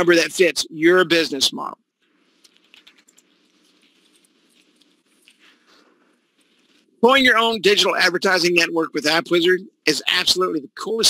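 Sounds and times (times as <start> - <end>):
typing on computer keyboard: 2.4 - 3.4.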